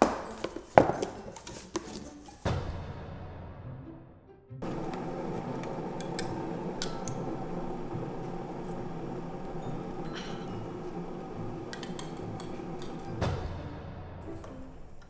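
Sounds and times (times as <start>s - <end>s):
mug and spoon clinking: 4.6s - 13.2s
steady background hum: 4.6s - 15.0s.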